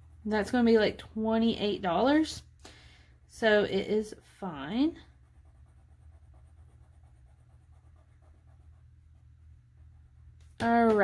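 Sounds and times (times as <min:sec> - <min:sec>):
marker scratching on paper: 0:03.5 - 0:10.6.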